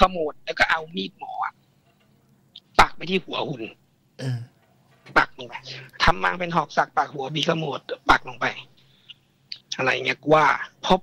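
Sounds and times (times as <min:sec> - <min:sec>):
man speaking: 0:02.8 - 0:04.5
man clearing throat: 0:04.2 - 0:04.5.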